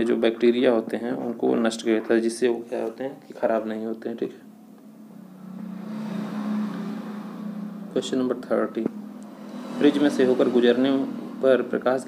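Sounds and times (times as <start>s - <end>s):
rushing noise: 5.0s - 12.0s.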